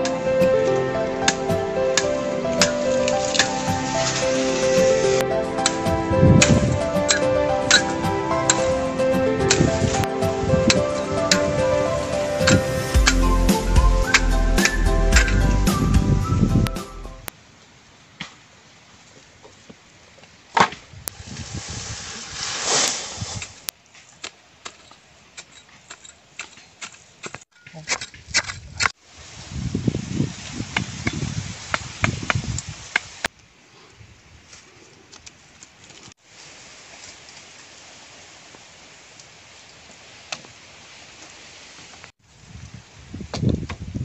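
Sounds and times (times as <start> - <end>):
rustling: 0.0 - 8.6, 18.2 - 33.3
outdoor background: 0.0 - 44.0.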